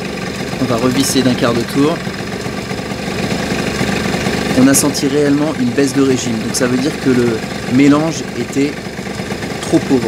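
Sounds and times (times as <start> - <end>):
scooter engine idling: 0.0 - 10.0.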